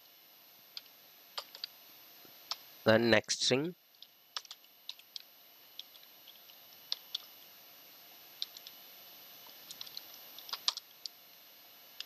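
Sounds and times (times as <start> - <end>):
typing on computer keyboard: 0.8 - 1.7, 4.0 - 7.3, 8.4 - 8.8, 9.6 - 10.9.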